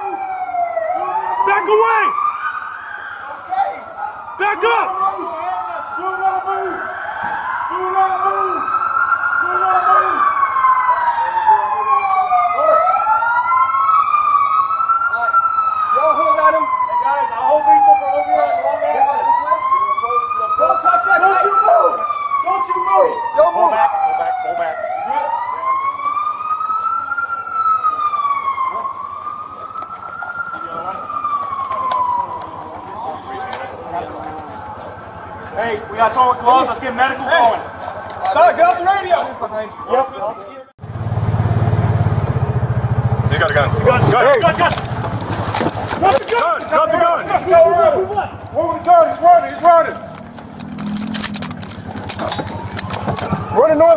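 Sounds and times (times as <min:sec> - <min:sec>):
emergency sirens wailing: 0:00.0 - 0:53.9.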